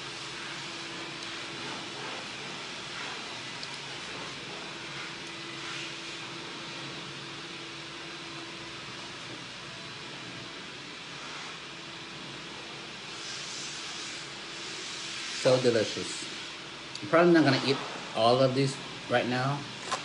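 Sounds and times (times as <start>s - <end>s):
hissing cleaning machine: 0.0s - 20.0s.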